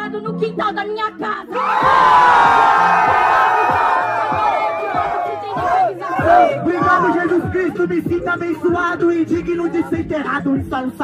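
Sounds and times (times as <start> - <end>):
crowd shouting and hollering: 1.5 - 7.5.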